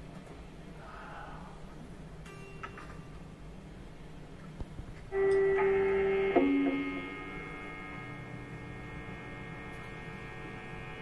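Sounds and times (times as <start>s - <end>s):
amp hum: 0.0s - 11.0s
electric guitar notes: 5.1s - 11.0s.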